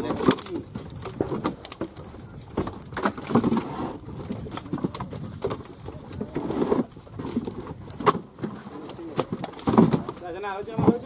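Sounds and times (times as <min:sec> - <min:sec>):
fish dropped into plastic crates: 0:00.0 - 0:11.0.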